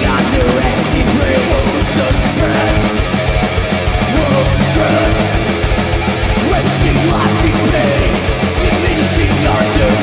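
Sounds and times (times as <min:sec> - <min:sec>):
bass guitar: 0:00.0 - 0:10.0
distorted electric guitars: 0:00.0 - 0:10.0
fast programmed drums: 0:00.0 - 0:10.0.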